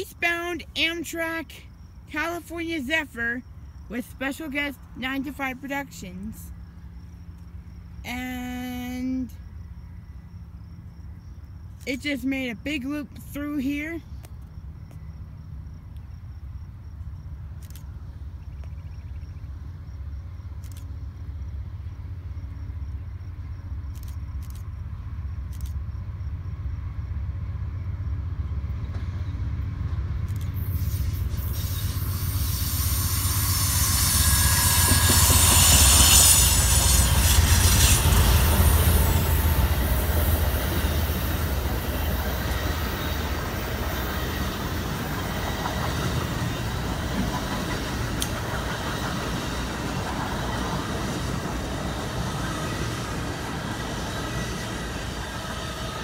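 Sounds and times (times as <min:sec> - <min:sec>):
diesel locomotive rumble: 0:00.0 - 0:56.0
train cars rolling over rails: 0:19.5 - 0:56.0.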